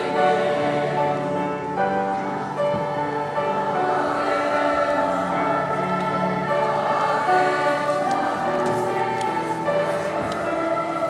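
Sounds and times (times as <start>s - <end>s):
choir singing held chords: 0.0s - 11.0s.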